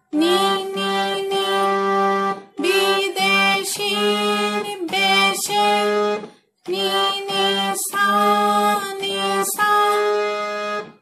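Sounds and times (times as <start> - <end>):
harmonium playing: 0.2 - 11.0.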